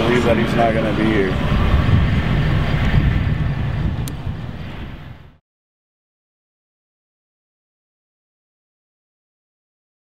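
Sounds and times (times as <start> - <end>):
low outdoor rumble: 0.0 - 5.4.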